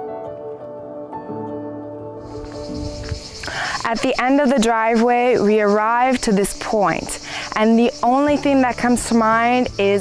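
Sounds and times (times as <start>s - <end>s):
soft background music: 0.0s - 10.0s
high-pitched insect chorus: 2.2s - 10.0s
woman speaking: 3.7s - 10.0s.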